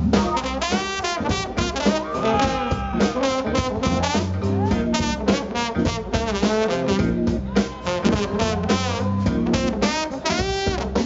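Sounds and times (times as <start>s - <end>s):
drum kit: 0.0s - 11.0s
low bass line: 0.0s - 11.0s
brass horn section: 0.1s - 11.0s.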